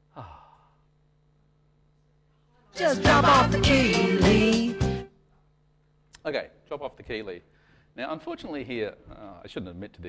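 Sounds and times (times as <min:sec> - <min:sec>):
faint steady hum: 0:00.0 - 0:10.0
man's breathy oh: 0:00.1 - 0:00.9.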